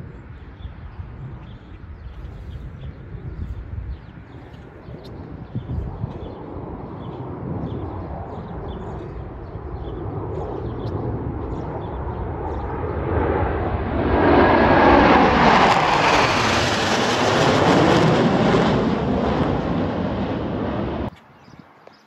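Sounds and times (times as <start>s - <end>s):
jets flying over: 0.0s - 21.1s.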